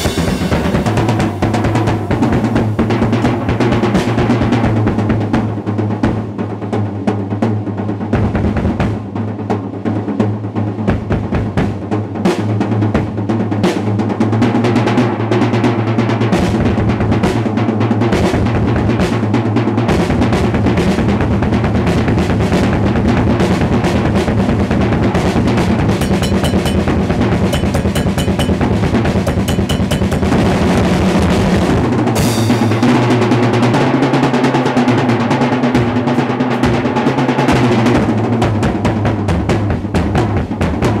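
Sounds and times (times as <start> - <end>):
drum kit solo: 0.0 - 41.0.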